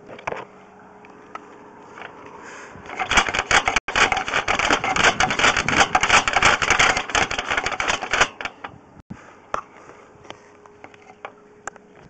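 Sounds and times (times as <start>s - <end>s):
push cable clicking and rattling: 2.9s - 8.8s.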